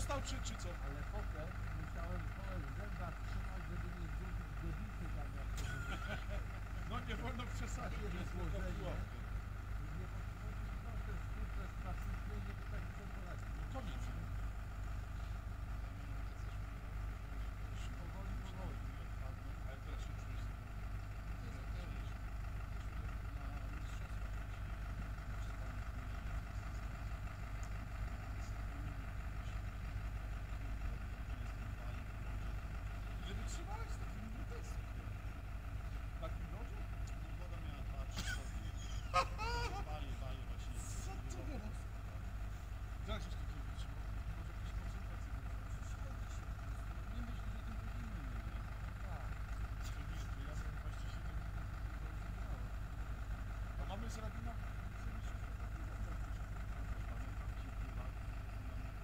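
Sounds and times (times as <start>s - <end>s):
faint distant voices: 0.0s - 59.0s.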